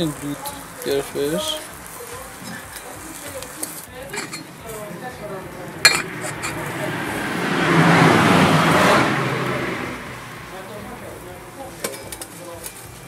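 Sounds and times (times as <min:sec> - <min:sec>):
metal spatula clinking on grill grate: 0:00.2 - 0:04.9, 0:05.8 - 0:06.7, 0:11.7 - 0:12.9
rushing noise: 0:04.2 - 0:11.2.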